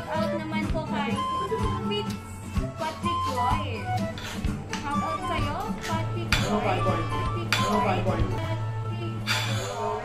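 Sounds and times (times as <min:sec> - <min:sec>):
music with steady beat: 0:00.0 - 0:09.4.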